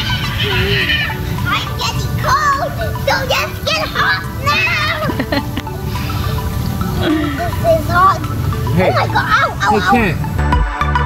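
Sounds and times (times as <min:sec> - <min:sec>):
children shouting and squealing: 0:00.0 - 0:10.4
background music: 0:00.0 - 0:11.0.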